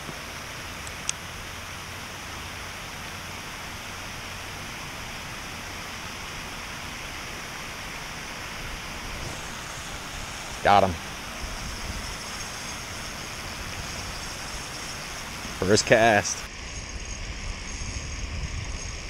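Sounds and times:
fountain water spraying: 0:00.0 - 0:17.6.

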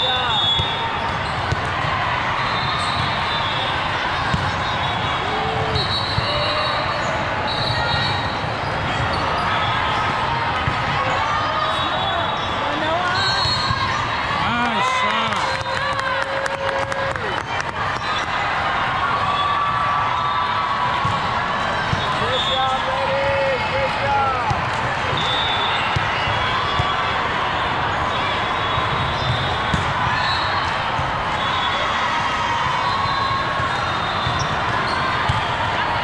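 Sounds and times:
din of many voices and calls: 0:00.0 - 0:36.0
volleyballs bouncing and being hit: 0:00.4 - 0:06.4, 0:08.1 - 0:11.2, 0:20.8 - 0:22.3, 0:24.4 - 0:31.4, 0:32.2 - 0:36.0.

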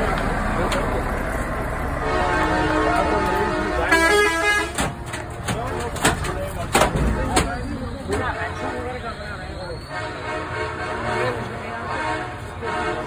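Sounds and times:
truck engines rumbling: 0:00.0 - 0:13.0
truck air horn blowing: 0:02.0 - 0:04.9, 0:09.8 - 0:13.0.

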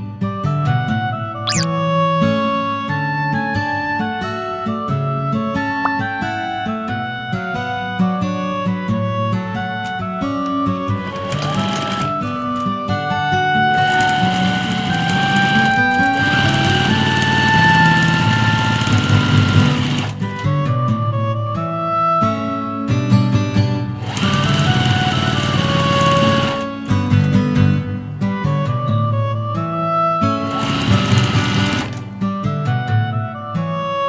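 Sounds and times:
background music with held notes: 0:00.0 - 0:34.0
sewing machine whirring: 0:10.8 - 0:12.9, 0:13.7 - 0:20.5, 0:24.0 - 0:26.9, 0:30.4 - 0:32.2.

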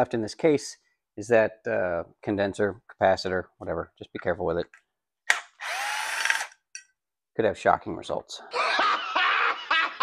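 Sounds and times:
drill click: 0:05.3 - 0:06.6
cordless drill motor whine: 0:05.6 - 0:06.6.

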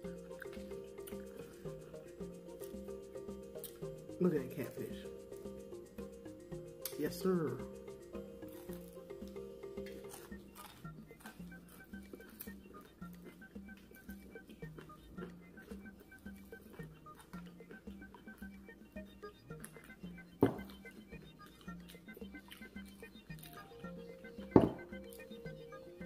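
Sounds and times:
crunching and chewing food: 0:00.0 - 0:04.5, 0:08.2 - 0:26.0
quiet background music: 0:00.0 - 0:26.0.

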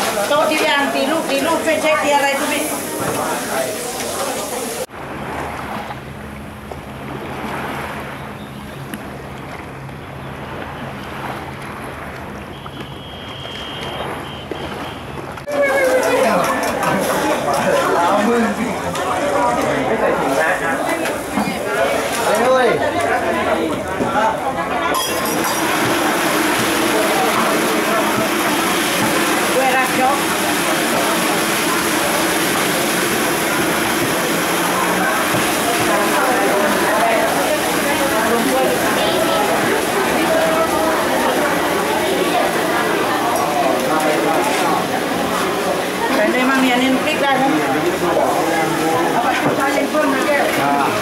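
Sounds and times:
street stall background noise: 0:00.0 - 0:51.0
surf rushing: 0:00.0 - 0:51.0.

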